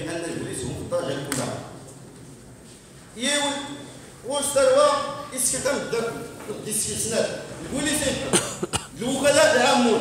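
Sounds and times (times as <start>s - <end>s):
man talking into a microphone: 0.0s - 1.8s, 3.2s - 10.0s
sharp cough: 8.2s - 9.0s.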